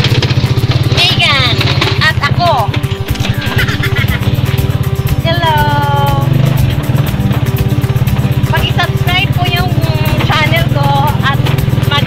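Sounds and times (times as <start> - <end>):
small motorcycle engine running: 0.0 - 12.0.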